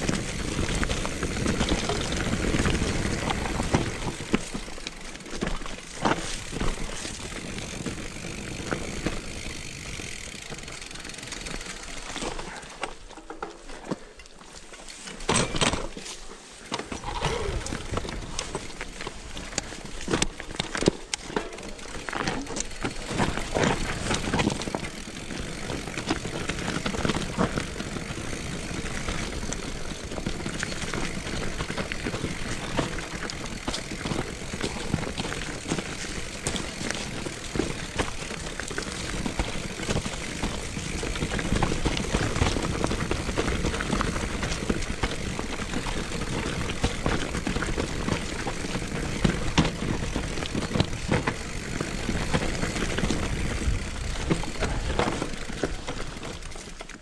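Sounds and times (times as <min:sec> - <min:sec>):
bike rattling over stones: 0:00.0 - 0:57.0
bike tyres rumbling on dirt: 0:00.0 - 0:57.0.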